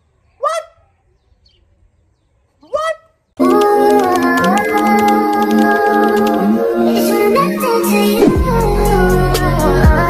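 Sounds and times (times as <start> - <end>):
loud music: 5.6 - 10.0.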